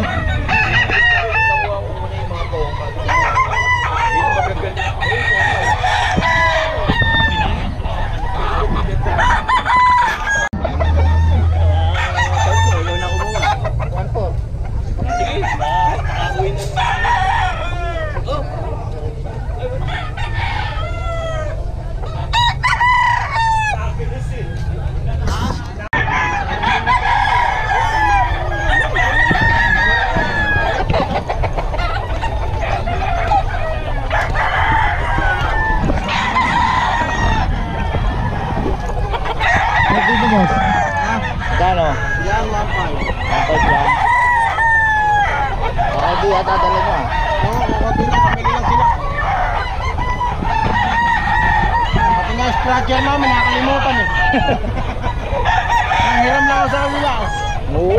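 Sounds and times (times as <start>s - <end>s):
chickens clucking: 0.0s - 57.9s
roosters crowing: 0.0s - 57.9s.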